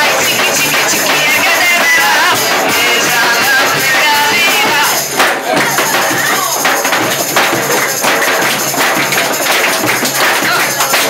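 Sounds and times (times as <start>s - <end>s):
driving percussion beat: 0.0s - 11.0s
folk band playing: 0.0s - 11.0s.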